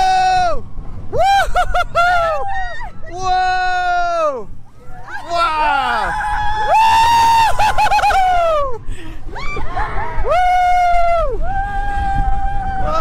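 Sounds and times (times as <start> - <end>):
riders screaming and whooping: 0.0 - 13.0
roller coaster train rumble: 0.0 - 13.0.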